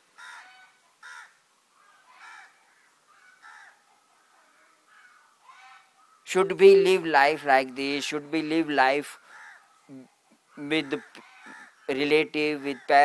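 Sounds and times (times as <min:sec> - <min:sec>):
crows cawing faintly: 0:00.0 - 0:08.2, 0:09.1 - 0:13.0.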